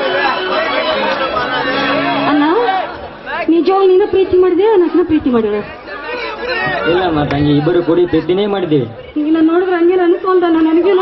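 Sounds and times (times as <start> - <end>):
music: 0.0 - 3.0.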